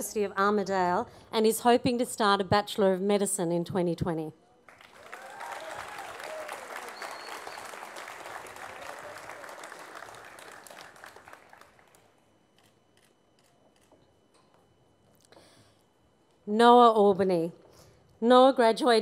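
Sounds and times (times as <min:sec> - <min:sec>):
audience applauding: 0:04.7 - 0:12.1.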